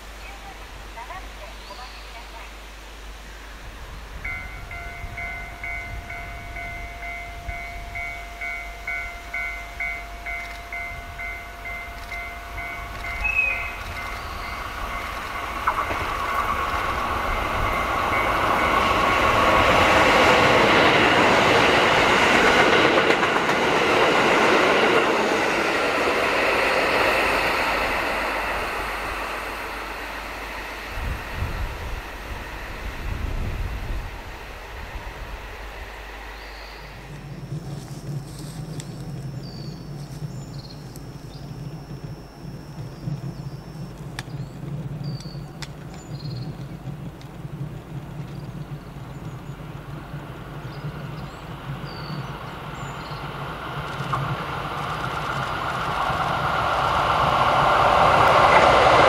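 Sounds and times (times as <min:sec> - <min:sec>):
diesel train passing: 0:00.0 - 0:59.0
level-crossing alarm ringing: 0:04.2 - 0:22.8.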